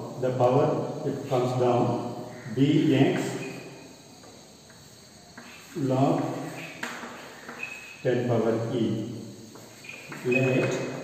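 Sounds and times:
man speaking: 0.0 - 3.5, 5.7 - 6.4, 8.0 - 9.1, 10.1 - 11.0
low background hiss: 0.0 - 11.0
chalk tapping and scratching: 4.2 - 8.0, 9.5 - 11.0.

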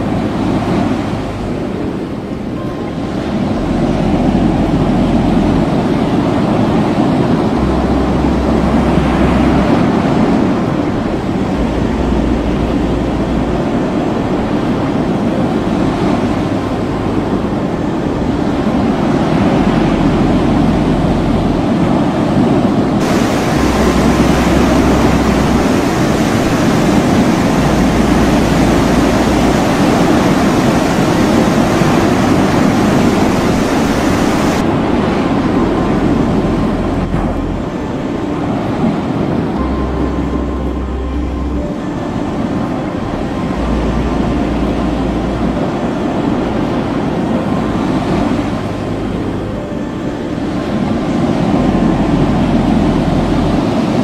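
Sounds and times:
low steady notes: 0.0 - 54.0
water rushing and surging: 0.0 - 54.0.

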